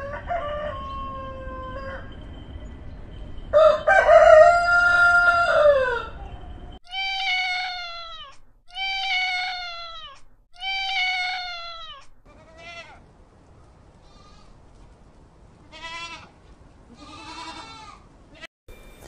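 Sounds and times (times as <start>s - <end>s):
rooster crowing: 0.0s - 2.3s, 3.5s - 6.7s
cat meowing: 6.9s - 13.0s.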